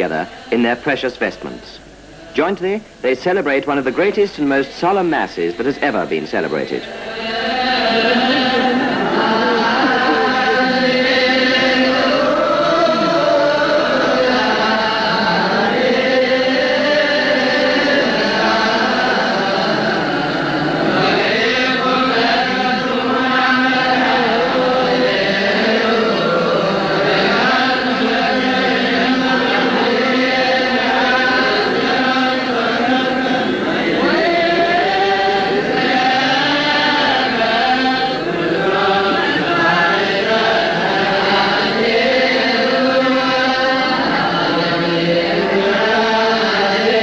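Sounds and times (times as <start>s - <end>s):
voices chanting liturgically: 0.0s - 47.0s.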